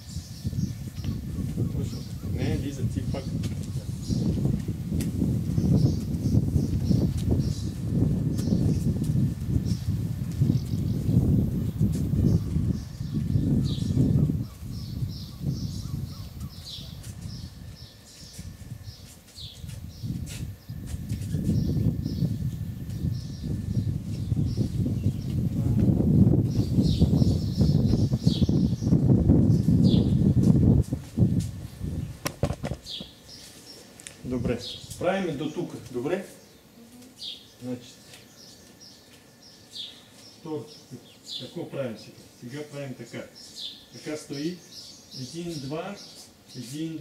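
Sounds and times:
low gusting rumble: 0:00.0 - 0:17.9, 0:19.8 - 0:33.1
small birds chirping: 0:00.0 - 0:47.0.

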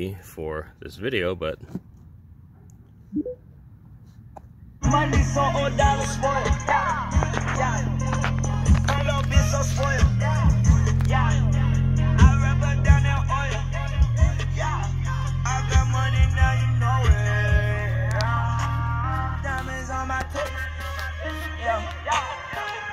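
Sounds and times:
song through loud stereo speakers: 0:04.8 - 0:22.9.

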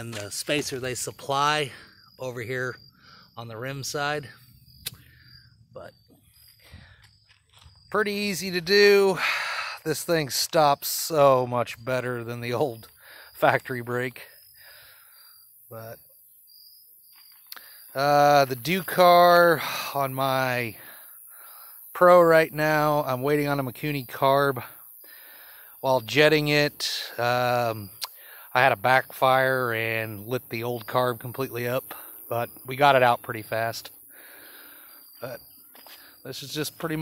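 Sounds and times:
faint steady hiss: 0:00.0 - 0:37.0
man's voice: 0:36.3 - 0:37.0.

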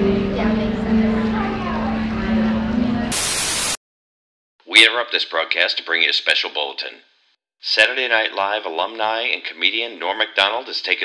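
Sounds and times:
tv static hiss: 0:03.1 - 0:03.8.

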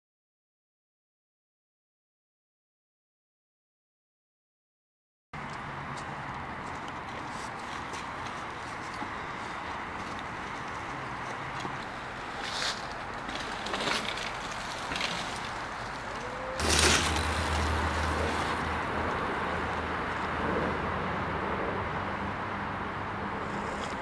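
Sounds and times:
mountain bike riding on dirt: 0:07.0 - 0:20.5.

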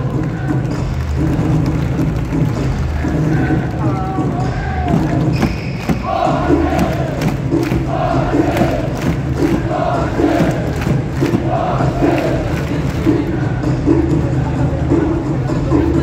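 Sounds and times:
crowd chanting in unison: 0:04.4 - 0:14.2.

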